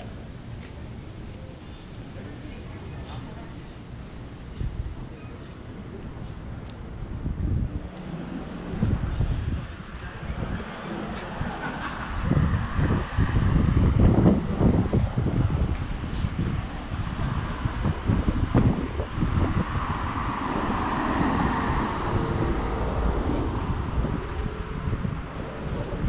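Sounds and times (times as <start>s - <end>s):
street ambience: 0.0s - 26.0s
wind buffeting microphone: 1.9s - 26.0s.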